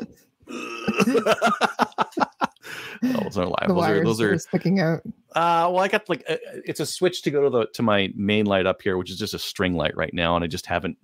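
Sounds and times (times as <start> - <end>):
people laughing: 0.0 - 4.6.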